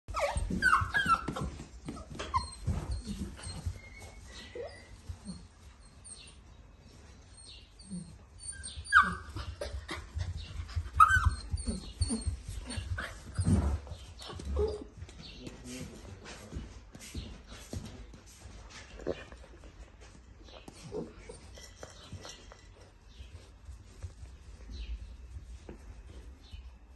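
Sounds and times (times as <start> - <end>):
puppy whining and yipping: 0.1 - 6.4, 7.2 - 15.0, 20.8 - 22.4.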